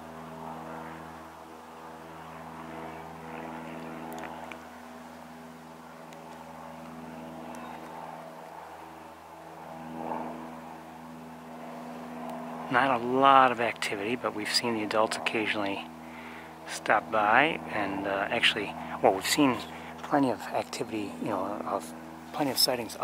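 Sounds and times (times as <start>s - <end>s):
low mechanical drone: 0.0s - 23.0s.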